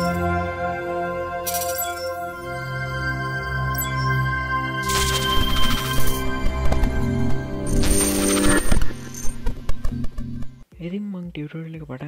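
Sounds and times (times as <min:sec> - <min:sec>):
sustained synth tones: 0:02.4 - 0:10.6
electronic glitch clicks: 0:04.8 - 0:10.6.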